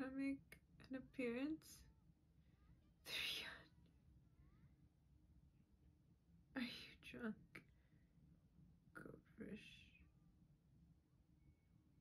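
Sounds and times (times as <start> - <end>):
woman whispering: 3.1 - 3.8, 6.6 - 7.7, 8.9 - 10.2.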